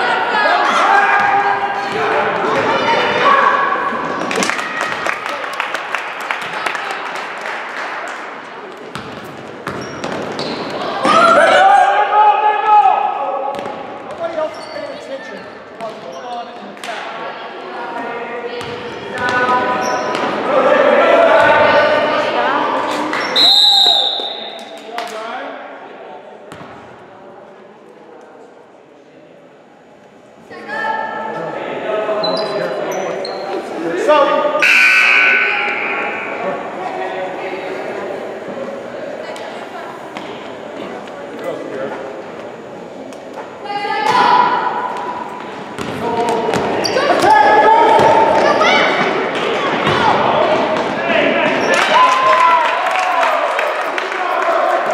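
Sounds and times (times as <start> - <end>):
basketballs bouncing on hardwood floor: 8.9 - 10.5, 45.8 - 47.3
referee's whistle: 23.2 - 24.6, 34.6 - 36.4
people shouting: 47.0 - 49.0.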